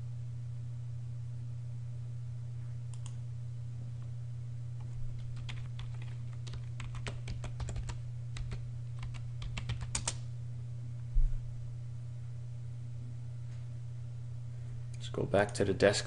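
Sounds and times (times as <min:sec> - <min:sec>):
low hum: 0:00.0 - 0:16.0
keyboard typing: 0:04.8 - 0:10.2.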